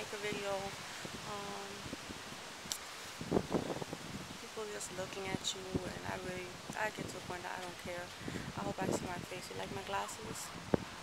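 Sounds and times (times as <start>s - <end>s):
wind and rustling: 0.0s - 11.0s.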